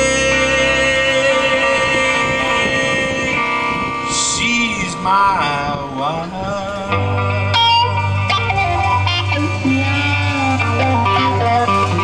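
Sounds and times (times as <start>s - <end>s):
electric guitar: 0.0s - 12.0s
live rock band playing: 0.0s - 12.0s.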